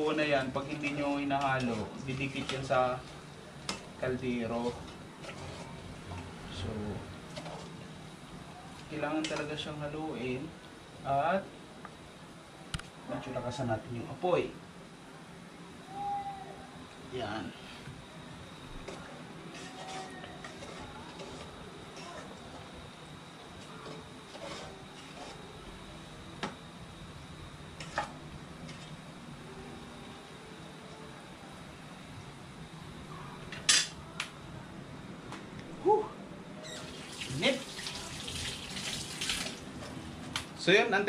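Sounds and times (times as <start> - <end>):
metal spoon stirring in a pot: 4.7 - 5.8, 18.8 - 22.4, 23.6 - 25.5.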